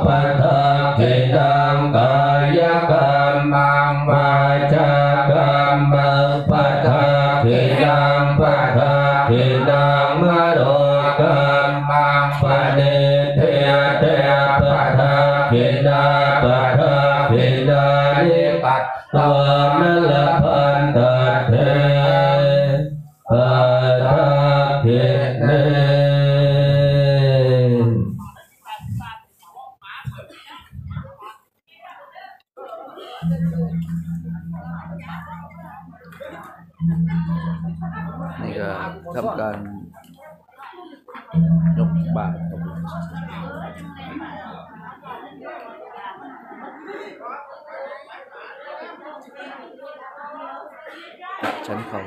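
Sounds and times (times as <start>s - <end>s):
monotone chanting with low drone: 0.0s - 28.1s, 33.0s - 40.0s, 41.4s - 45.5s.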